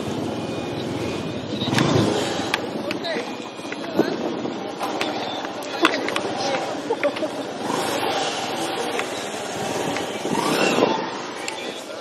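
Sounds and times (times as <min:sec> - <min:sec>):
wind rushing on microphone: 0:00.0 - 0:06.8.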